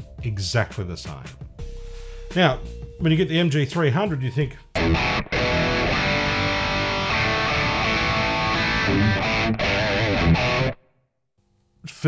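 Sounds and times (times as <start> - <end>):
electric guitar playing: 4.8 - 10.9.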